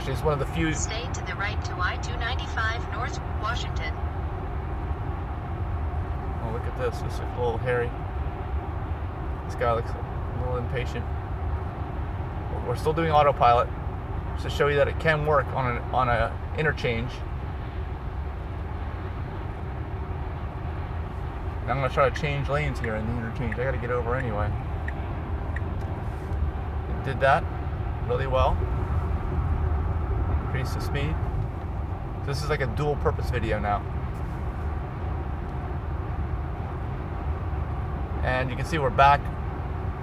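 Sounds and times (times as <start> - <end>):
road and tyre noise: 0.0 - 40.0
wind noise in car cabin: 0.0 - 40.0.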